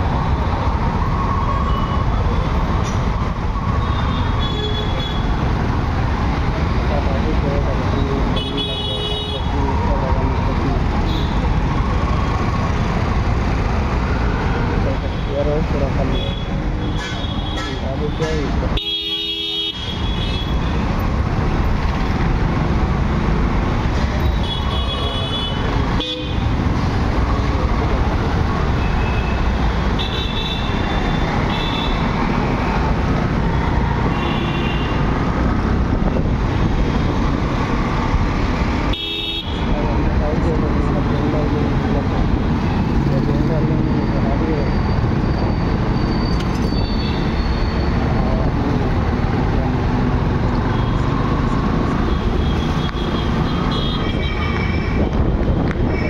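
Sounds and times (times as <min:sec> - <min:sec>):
traffic engines and road noise: 0:00.0 - 0:56.0.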